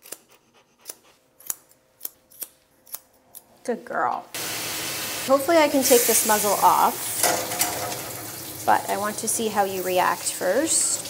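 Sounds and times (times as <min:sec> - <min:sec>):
scissors snipping hair: 0:00.0 - 0:03.5.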